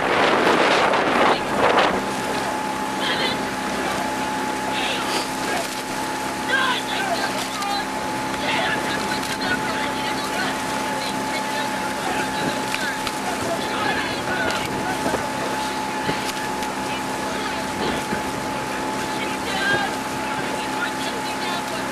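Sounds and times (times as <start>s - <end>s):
outboard motor running: 0.0s - 21.9s
water noise: 0.0s - 21.9s
wind: 0.0s - 21.9s.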